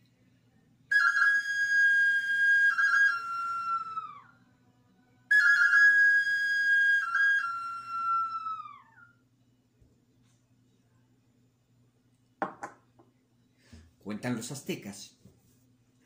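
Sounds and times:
hand whistle blown: 0.9 - 4.4, 5.3 - 9.2.

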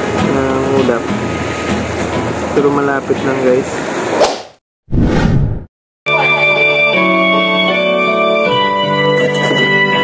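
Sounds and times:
whoosh sound effect: 4.1 - 5.7.

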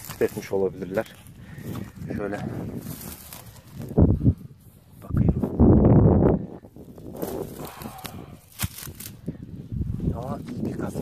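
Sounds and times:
dry grass rustling underfoot: 0.0 - 10.9.

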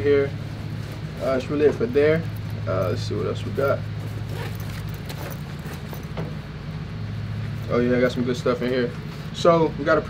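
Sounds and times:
steady low hum: 0.0 - 10.0
bag rustling: 0.4 - 6.6.

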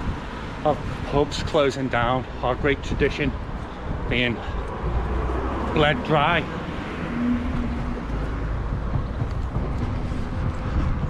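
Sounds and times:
road noise: 0.0 - 11.0
wind buffeting microphone: 0.0 - 11.0.

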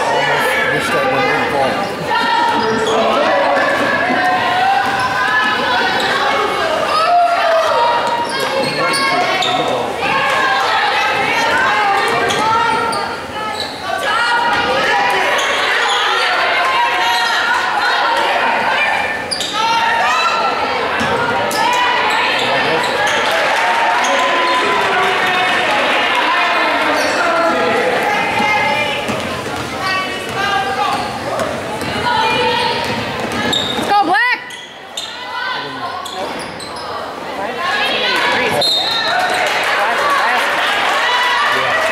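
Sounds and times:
echoing voices in a hall: 0.0 - 41.9.

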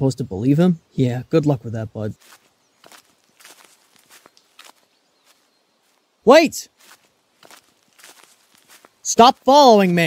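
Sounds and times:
faint footsteps in woodland: 0.6 - 10.0.

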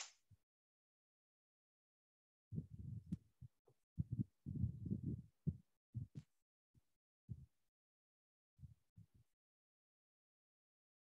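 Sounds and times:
muffled low thumps and rumbles: 2.6 - 6.2.

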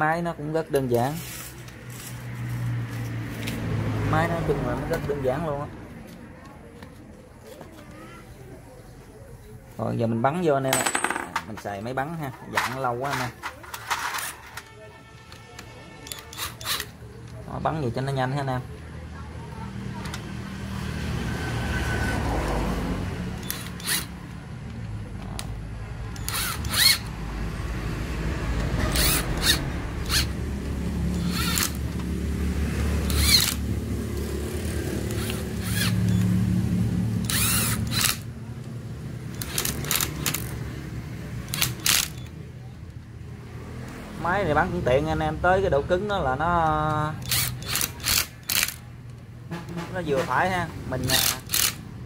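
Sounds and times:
electric screwdriver whirring: 16.1 - 17.0, 23.4 - 24.2, 26.2 - 27.1, 28.9 - 30.4, 31.1 - 32.0, 33.0 - 33.7, 35.0 - 36.4, 37.2 - 38.3, 39.3 - 40.6, 41.5 - 42.3, 47.2 - 48.8, 51.1 - 51.8
slip clutch clicking: 31.1 - 32.1, 33.0 - 34.3, 37.2 - 40.6, 41.4 - 42.4, 46.9 - 49.3, 51.0 - 51.8.

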